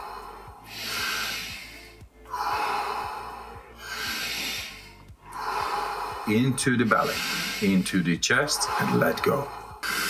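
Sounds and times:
background music with low beat: 0.0 - 10.0
deep forceful breathing: 0.0 - 10.0.

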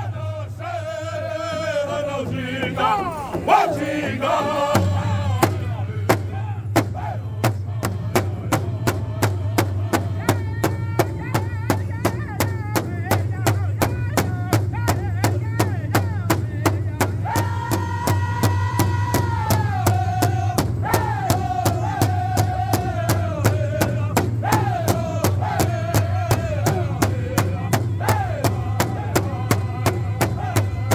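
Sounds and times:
large drum beaten with sticks: 0.0 - 30.9
men singing in high voices: 0.0 - 30.9.

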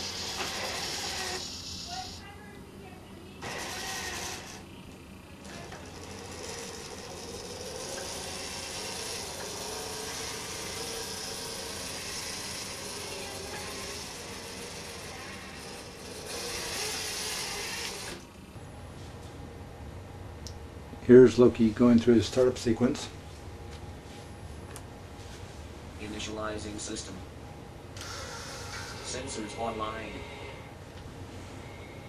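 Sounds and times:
gear motors whirring and grinding: 0.0 - 2.2, 3.4 - 4.6, 5.4 - 18.3.

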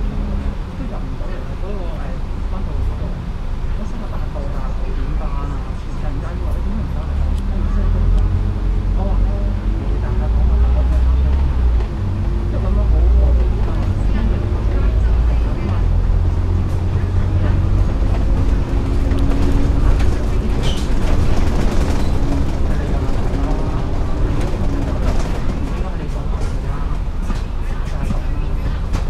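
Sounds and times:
bus engine drone: 0.0 - 29.0.

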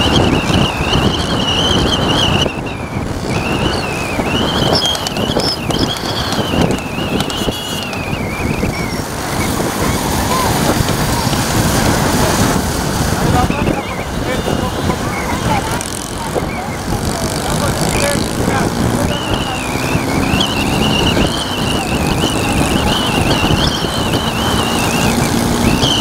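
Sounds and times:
high wavering whistle-like tone: 0.0 - 10.5, 19.1 - 26.0
highway traffic noise: 0.0 - 26.0
voices: 0.0 - 26.0.

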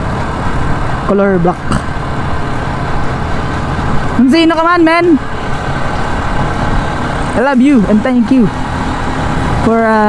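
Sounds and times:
road noise: 0.0 - 10.0.

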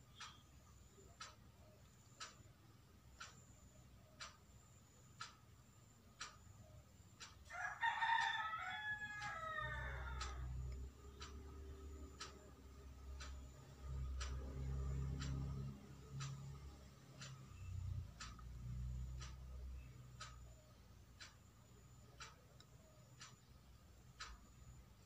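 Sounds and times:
clock ticking: 0.0 - 25.0
rooster crowing: 7.5 - 10.7.

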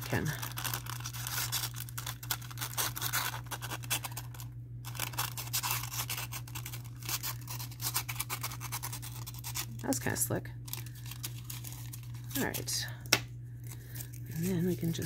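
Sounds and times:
steady low hum: 0.0 - 15.0
waxed paper crinkling: 0.0 - 15.0.

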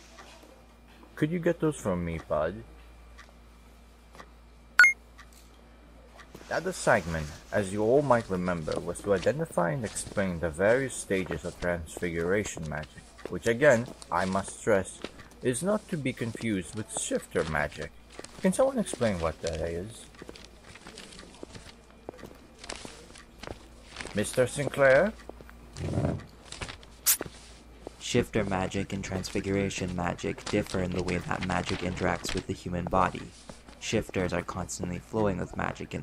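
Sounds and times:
faint steady hum: 0.0 - 36.0.

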